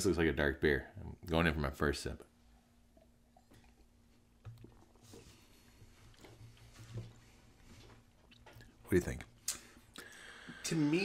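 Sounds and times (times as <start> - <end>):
person sipping and swallowing: 2.9 - 8.8.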